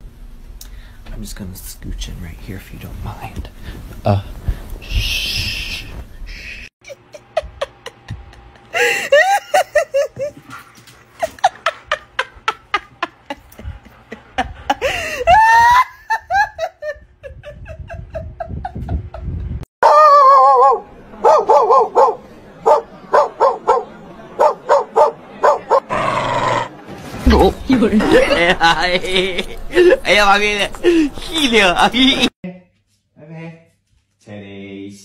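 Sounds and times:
dog barking: 0:19.8 - 0:25.9
person's voice: 0:29.8 - 0:33.6.

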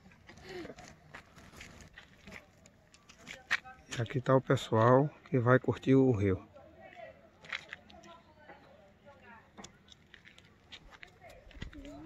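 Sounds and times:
soft rustles: 0:00.2 - 0:03.5.

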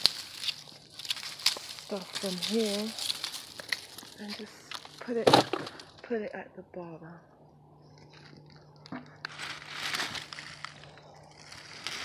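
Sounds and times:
dry leaves crunching and rustling: 0:00.0 - 0:05.0, 0:09.2 - 0:12.0.

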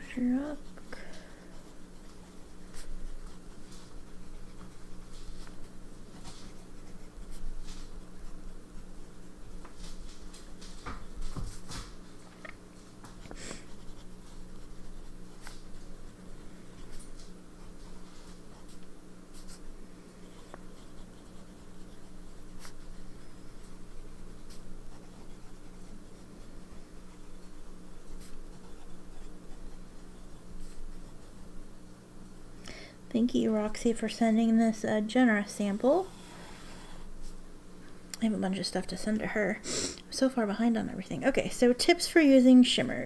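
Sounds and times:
steady low hum: 0:00.0 - 0:43.0
fountain pen scratching paper: 0:01.6 - 0:09.7, 0:13.5 - 0:31.6.

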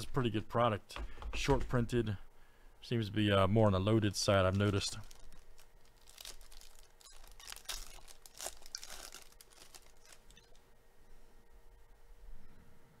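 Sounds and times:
foil wrapper tearing and crinkling: 0:04.3 - 0:10.6.

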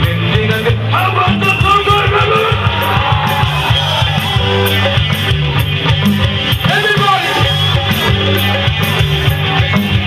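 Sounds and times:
bass line: 0:00.0 - 0:10.0
electric guitars: 0:00.0 - 0:10.0
keyboard: 0:00.0 - 0:10.0.

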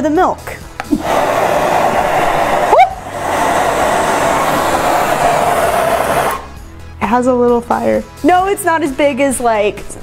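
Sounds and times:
short rising sound: 0:00.9 - 0:06.7
torch flame rushing: 0:00.9 - 0:06.7.

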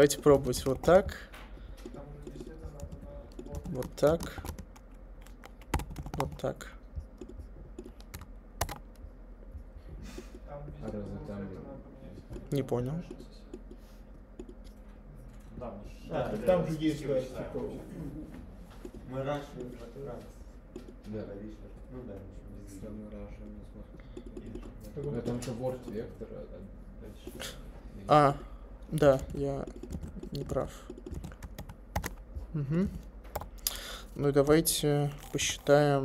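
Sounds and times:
man's voice murmuring: 0:32.4 - 0:33.0.

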